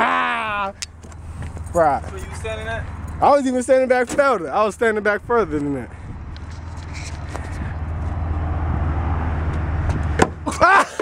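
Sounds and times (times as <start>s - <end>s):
motor vehicle rumble: 0.0s - 11.0s.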